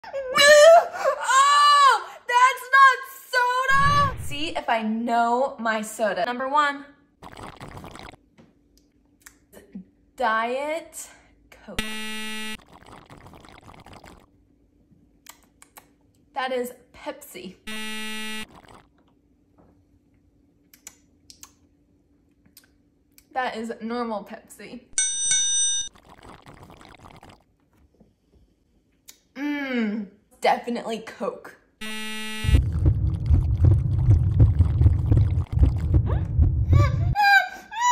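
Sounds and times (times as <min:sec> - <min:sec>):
slurping through a straw: 0:07.2 - 0:08.2, 0:12.5 - 0:14.3, 0:18.3 - 0:19.0, 0:25.9 - 0:27.4, 0:31.9 - 0:36.0
soda sucked through straw: 0:07.2 - 0:08.2, 0:12.6 - 0:14.2
wrong-answer buzzer: 0:11.8 - 0:12.6, 0:17.7 - 0:18.5, 0:31.8 - 0:32.6.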